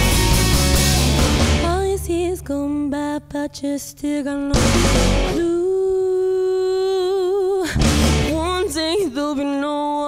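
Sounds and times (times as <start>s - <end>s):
drum hit: 0.0s - 2.1s, 4.6s - 5.4s, 7.8s - 8.4s.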